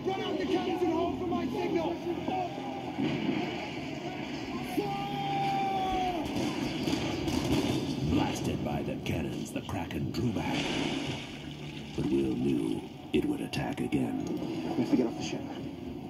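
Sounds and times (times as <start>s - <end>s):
men shouting orders: 4.2s - 6.6s.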